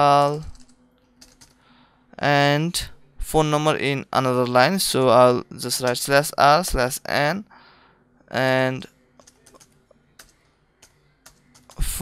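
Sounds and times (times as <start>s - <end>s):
computer keyboard typing: 0.3s - 1.6s, 9.2s - 11.8s.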